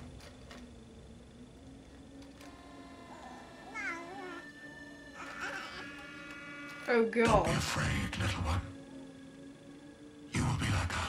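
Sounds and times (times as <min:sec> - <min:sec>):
infant whimpering and crying: 0:03.0 - 0:07.0.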